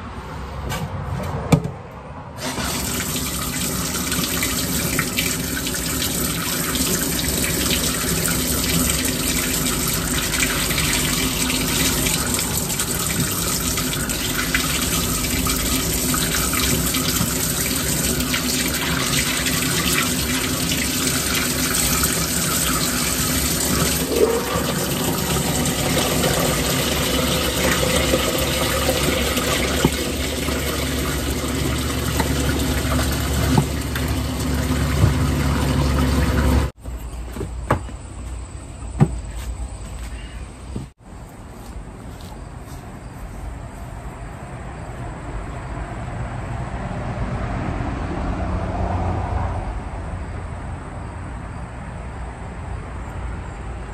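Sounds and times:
faucet water splashing into sink: 2.4s - 36.7s.

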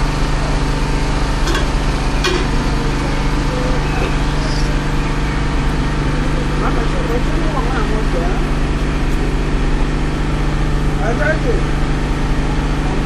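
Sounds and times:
generator engine humming: 0.0s - 13.0s.

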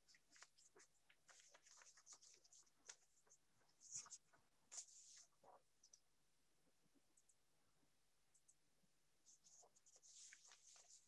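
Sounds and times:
paper rustling: 0.0s - 5.6s, 9.4s - 11.0s.

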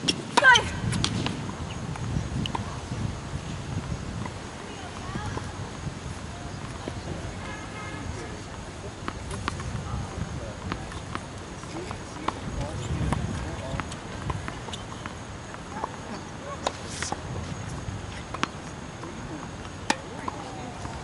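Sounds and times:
tennis ball bouncing on court: 9.0s - 9.8s, 10.6s - 17.2s, 18.1s - 21.0s.

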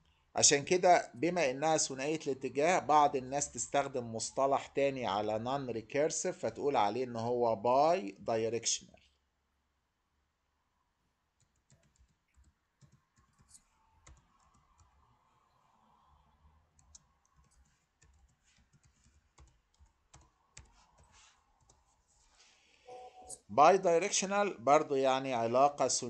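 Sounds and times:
faint keyboard typing: 11.4s - 15.4s, 16.7s - 22.3s.

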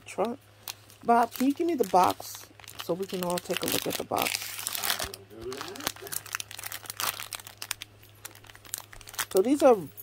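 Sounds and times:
plastic bag crinkling: 0.1s - 9.9s.

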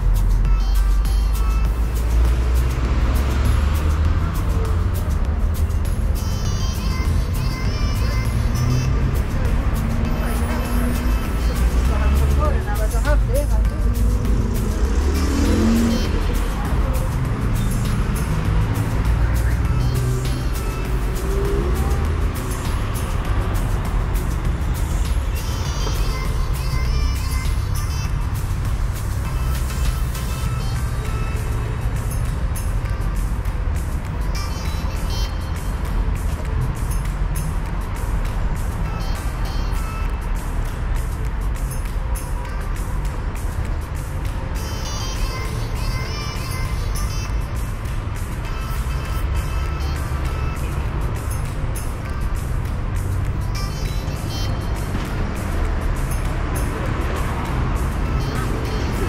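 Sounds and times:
traffic rumble: 0.0s - 59.0s
people's voices passing: 8.0s - 24.8s.

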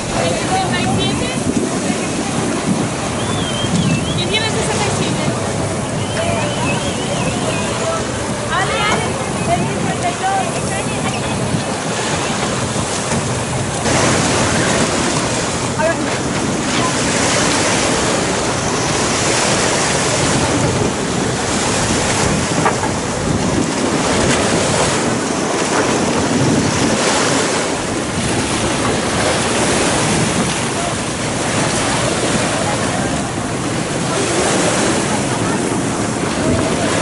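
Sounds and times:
faint voices: 0.0s - 37.0s
sea waves washing in: 0.0s - 37.0s
wind buffeting microphone: 0.0s - 37.0s.

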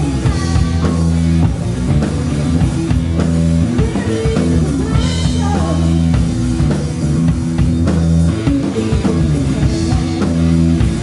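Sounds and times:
bass line: 0.0s - 11.0s
drum kit beat: 0.0s - 11.0s
electric guitar: 0.0s - 11.0s.

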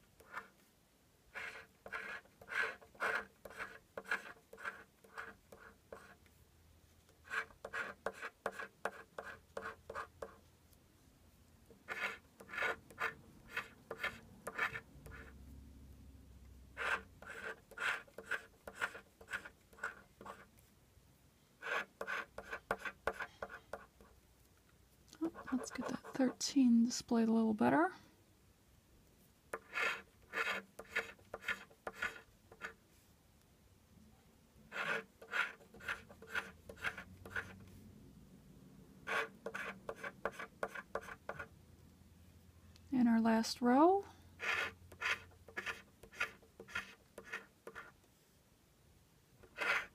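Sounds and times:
scratch card being scraped: 0.2s - 0.6s, 1.3s - 6.2s, 7.2s - 10.4s, 11.7s - 15.4s, 16.8s - 20.5s, 21.6s - 24.1s, 25.2s - 26.4s, 29.5s - 32.8s, 34.7s - 37.6s, 39.0s - 41.5s, 44.4s - 48.0s, 49.4s - 49.9s.

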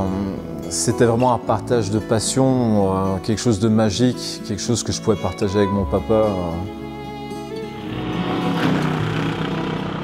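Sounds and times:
car engine driving past: 7.8s - 10.0s.

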